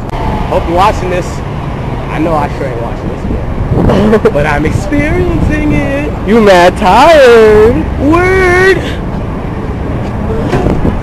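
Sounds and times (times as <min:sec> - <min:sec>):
rumble of passing vehicles: 0:00.0 - 0:11.0.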